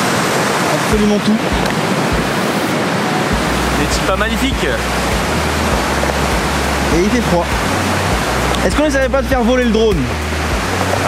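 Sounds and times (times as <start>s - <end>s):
river rushing: 0.0s - 11.0s.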